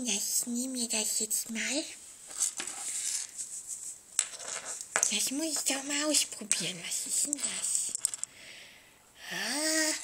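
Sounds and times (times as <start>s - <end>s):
rustling handling noise: 2.1s - 8.3s.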